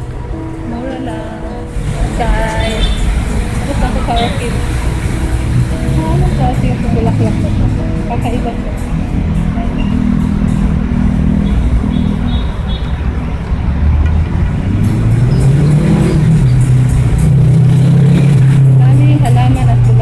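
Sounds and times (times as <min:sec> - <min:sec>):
vehicle engine running: 0:00.0 - 0:20.0.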